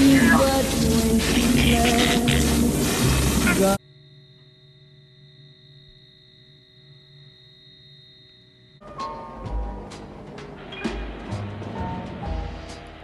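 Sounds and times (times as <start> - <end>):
loud film soundtrack: 8.8 - 13.0.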